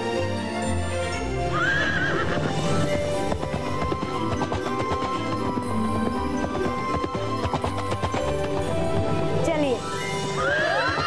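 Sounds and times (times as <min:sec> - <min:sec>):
background music: 0:00.0 - 0:11.0
horse whinnying: 0:01.5 - 0:03.8.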